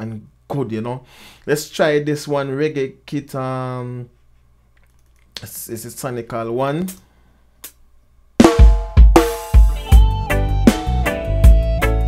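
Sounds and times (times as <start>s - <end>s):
deep kick drum: 8.4s - 10.3s.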